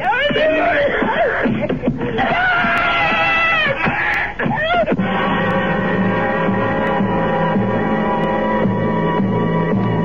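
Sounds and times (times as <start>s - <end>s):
person screaming: 0.0s - 5.4s.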